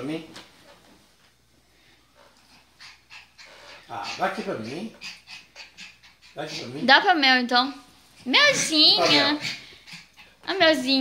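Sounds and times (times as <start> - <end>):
dog breathing faintly: 1.7 - 7.0, 7.8 - 10.9.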